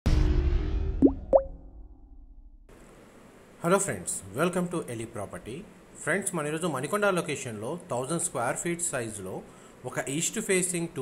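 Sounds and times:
rising bloop pops: 1.0s - 1.7s.

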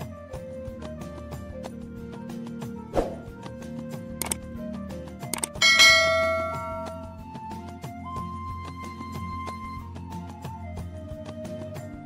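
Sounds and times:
background music: 0.0s - 12.0s
mouse click sounds: 4.2s - 4.4s, 5.3s - 5.6s
notification bell chime: 5.4s - 7.2s.

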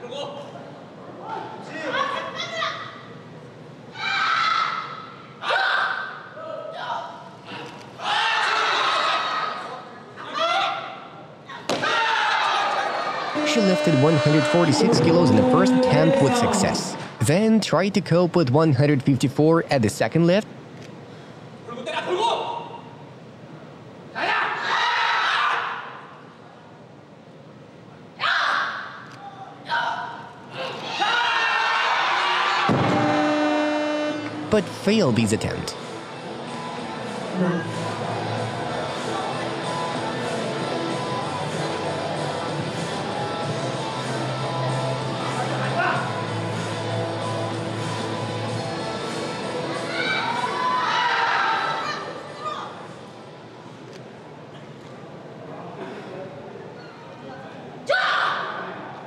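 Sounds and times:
low hall background: 0.0s - 59.0s.

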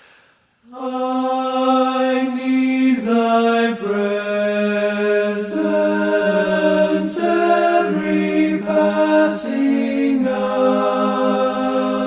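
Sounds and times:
slow hymn choir chords: 0.6s - 12.0s.

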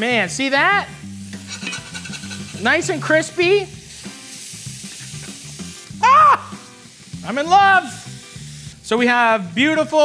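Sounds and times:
background music with bass line: 0.0s - 10.0s
burger patties sizzling in a pan: 0.0s - 10.0s.

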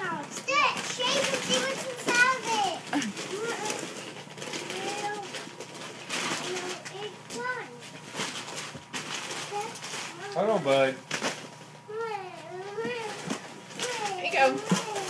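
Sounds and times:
wrapping paper rustling: 0.0s - 15.0s
toddler babbling: 11.9s - 13.2s, 13.8s - 15.0s.

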